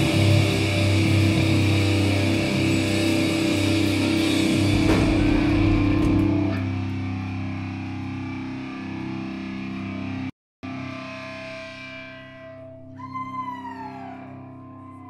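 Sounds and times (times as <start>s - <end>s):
heavy rock band playing: 0.0s - 8.1s
guitar note bending downward: 0.0s - 8.2s
guitar chord ringing: 0.0s - 13.0s.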